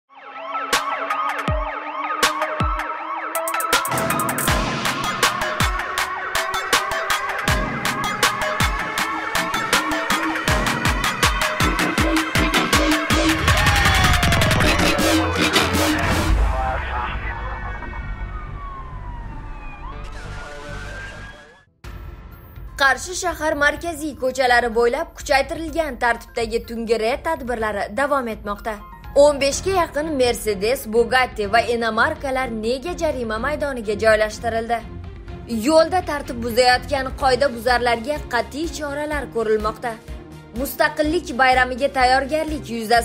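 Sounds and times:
siren wails: 0:00.1 - 0:21.7
low pulsing music beat: 0:00.8 - 0:17.3
deep falling bass drops: 0:13.3 - 0:21.6.

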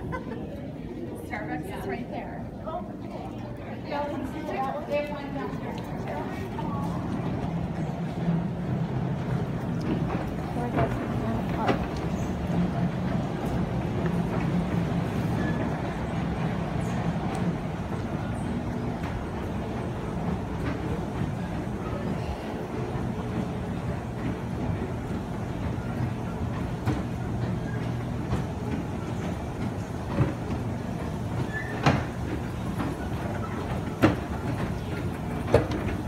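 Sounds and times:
escalator hum and rumble: 0:00.0 - 0:36.0.

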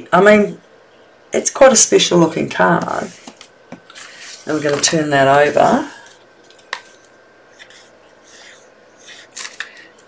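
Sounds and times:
paper rustling: 0:03.0 - 0:07.9.

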